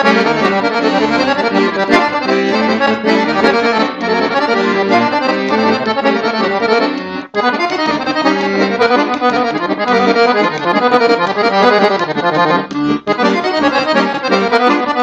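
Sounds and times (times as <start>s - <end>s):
button accordion playing folk dance tune: 0.0s - 15.0s.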